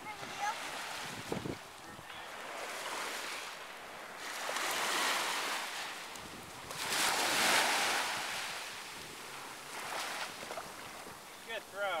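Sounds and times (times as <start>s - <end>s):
ocean surf breaking on shore: 0.0s - 12.0s.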